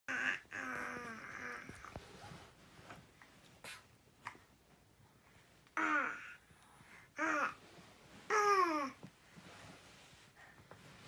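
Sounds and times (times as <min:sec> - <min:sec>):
baby babbling: 0:00.1 - 0:01.9, 0:05.8 - 0:06.4, 0:07.2 - 0:07.6, 0:08.3 - 0:09.0.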